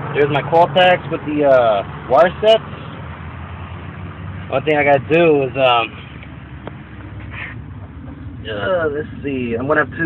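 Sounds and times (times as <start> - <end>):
low background rumble: 2.9 - 10.0.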